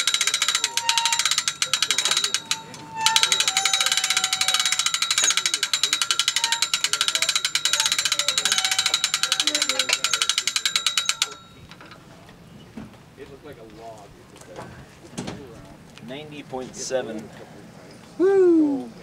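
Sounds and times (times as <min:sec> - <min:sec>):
ratchet winch clicking: 0:00.0 - 0:12.0.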